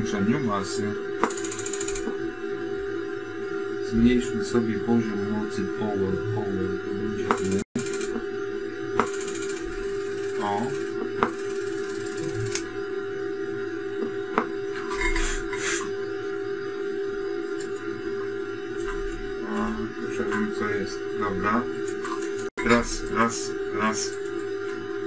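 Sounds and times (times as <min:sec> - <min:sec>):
amplifier buzzing tone: 0:00.0 - 0:25.0.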